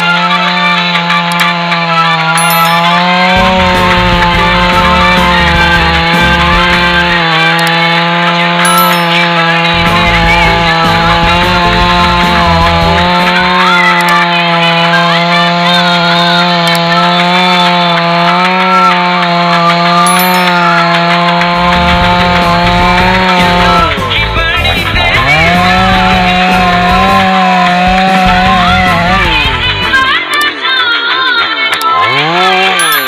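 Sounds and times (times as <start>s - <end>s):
chainsaw cutting log: 0.0s - 33.0s.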